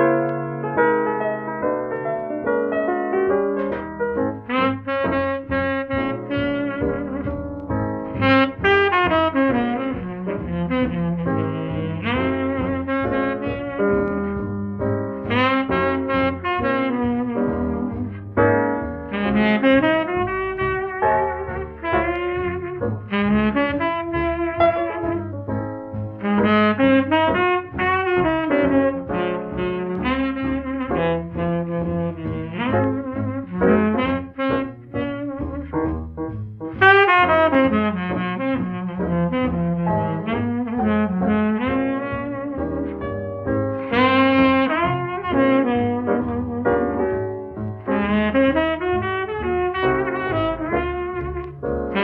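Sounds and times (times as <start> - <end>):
jazz piano bass and drums: 0.0 - 52.0
tenor saxophone melody: 3.6 - 52.0.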